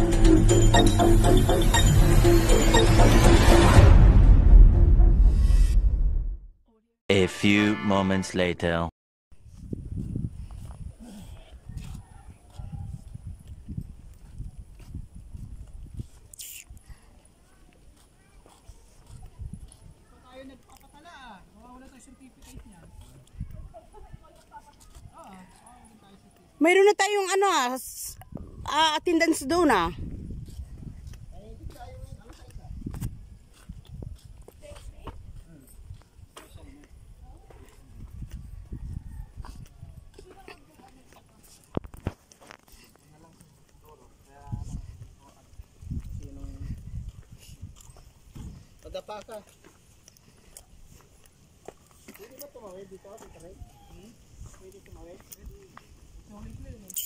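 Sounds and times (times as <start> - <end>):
low microphone rumble: 2.1 - 6.5
footsteps on concrete: 9.4 - 16.3, 17.1 - 20.8, 21.8 - 26.5, 29.4 - 56.3.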